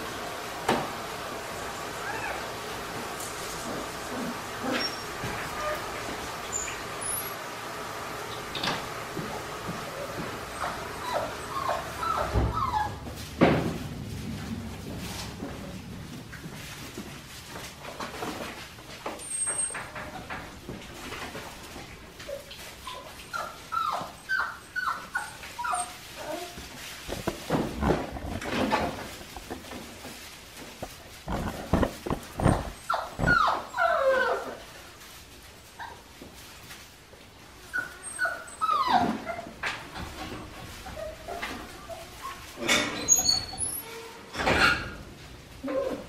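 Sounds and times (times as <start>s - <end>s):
puppies whining and yipping: 2.0s - 2.5s, 4.1s - 5.9s, 10.0s - 13.2s, 22.2s - 26.7s, 32.3s - 34.7s, 37.7s - 39.6s, 40.8s - 43.9s.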